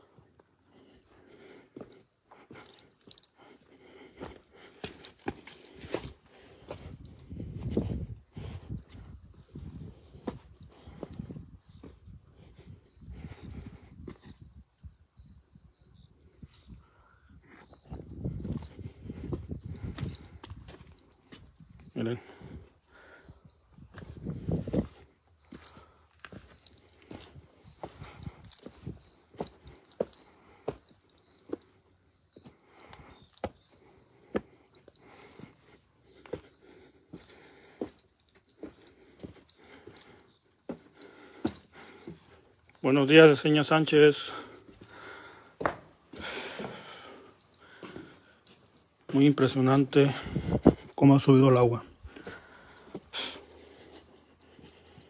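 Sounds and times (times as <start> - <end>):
high insect chirring: 0.0 - 55.0
footsteps and hands on rough stone: 1.4 - 12.8, 17.6 - 22.6, 23.9 - 42.8, 44.4 - 49.4, 50.2 - 55.0.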